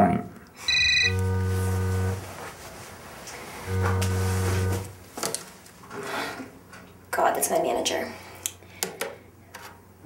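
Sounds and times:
mobile phone buzzing on vibrate: 0.6s - 2.5s, 3.6s - 5.0s.

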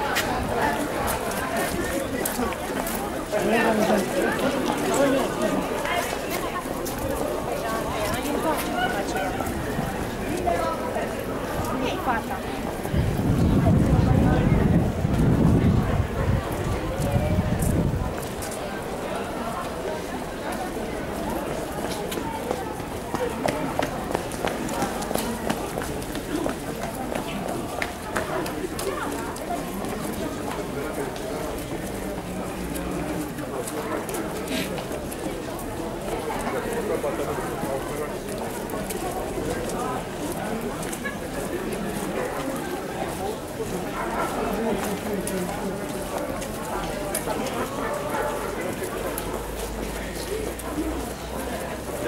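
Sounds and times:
indistinct talking: 0.0s - 52.0s
shoes clicking on cobblestones: 0.0s - 52.0s.

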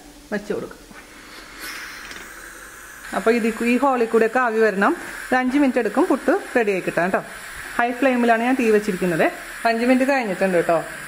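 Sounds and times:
pressure cooker steam hissing: 0.1s - 11.0s.

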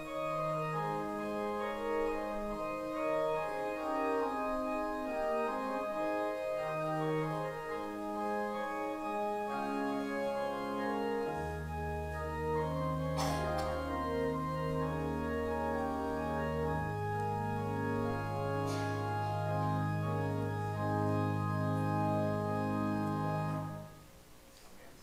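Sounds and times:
church organ playing chords: 0.0s - 24.1s.

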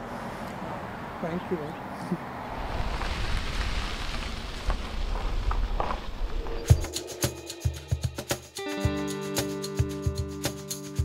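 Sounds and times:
wind buffeting microphone: 2.4s - 7.0s.

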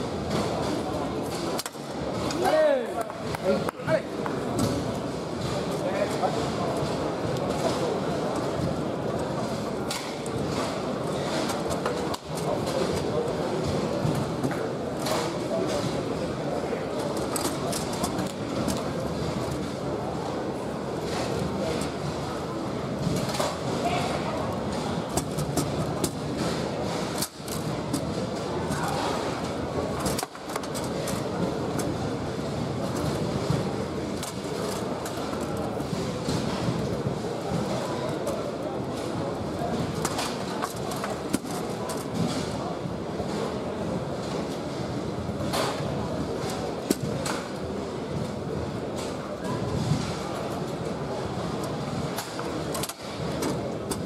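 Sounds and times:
indistinct voices in hall: 0.0s - 54.0s.

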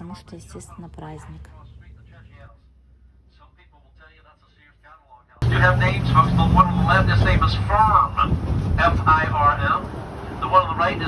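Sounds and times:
trolley engine hum and road noise: 0.0s - 3.0s, 5.4s - 11.0s
man talking: 5.4s - 9.8s.

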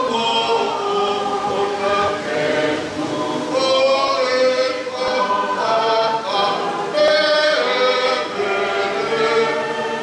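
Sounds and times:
choir singing sustained notes: 0.0s - 10.0s.

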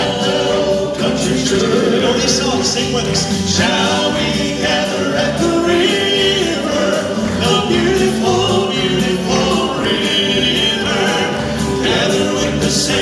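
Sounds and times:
male quartet singing in harmony: 0.0s - 13.0s.

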